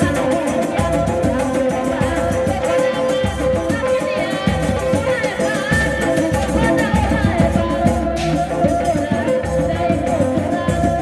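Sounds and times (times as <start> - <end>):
traditional drum ensemble: 0.0 - 11.0
woman singing into microphone: 0.0 - 11.0.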